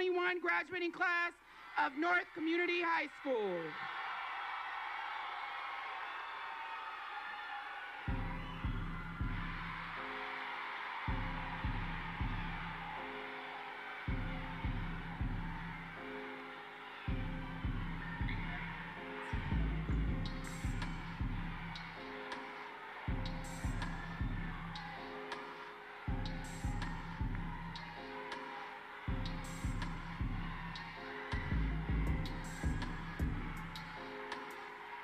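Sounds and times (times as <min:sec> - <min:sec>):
crowd cheering and shouting: 0:00.0 - 0:35.0
song with heavy bass beat: 0:17.1 - 0:35.0.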